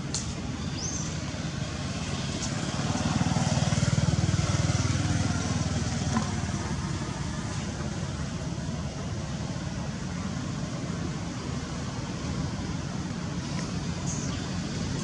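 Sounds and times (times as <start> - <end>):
vehicle engine passing: 1.2 - 15.0.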